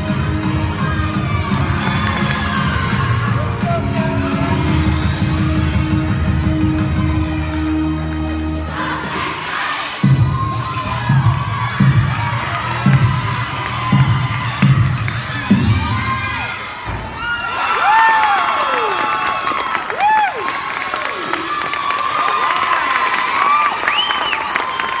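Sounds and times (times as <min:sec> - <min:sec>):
music with bass beat: 0:00.0 - 0:08.1.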